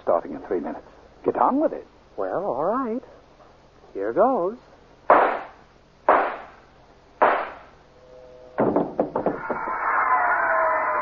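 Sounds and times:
gunshots: 5.1s - 6.6s, 7.2s - 7.7s
rattle of knocks: 8.6s - 9.7s.

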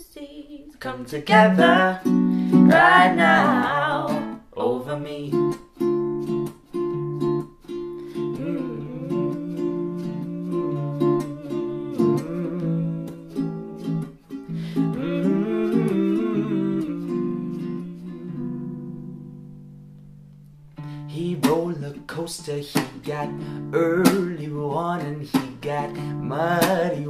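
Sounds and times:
plucked acoustic guitar: 1.0s - 27.0s
person humming wordlessly: 1.3s - 4.2s, 8.1s - 19.4s.

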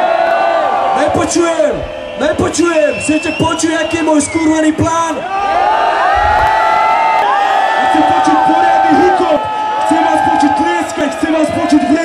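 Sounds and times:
crowd yelling and cheering: 0.0s - 12.0s
man speaking into microphone: 0.9s - 5.2s, 7.8s - 12.0s.

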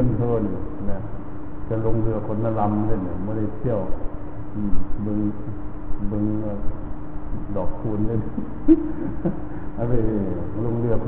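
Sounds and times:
low hum: 0.0s - 11.0s
man preaching: 9.8s - 11.0s.

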